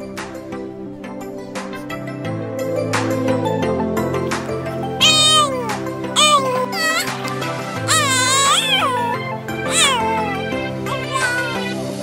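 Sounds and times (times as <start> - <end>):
high-pitched meow-like cry: 5.0 - 7.2, 7.9 - 10.4, 11.0 - 11.6.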